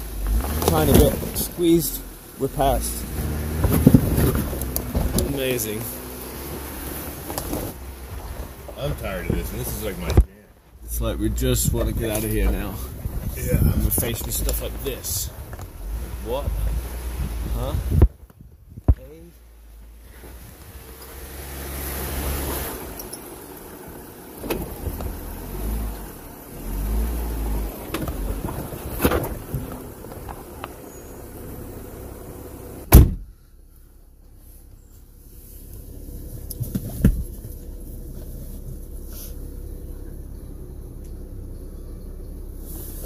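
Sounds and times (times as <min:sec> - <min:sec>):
off-road vehicle engine revving: 0:00.0 - 0:18.1, 0:19.0 - 0:33.1.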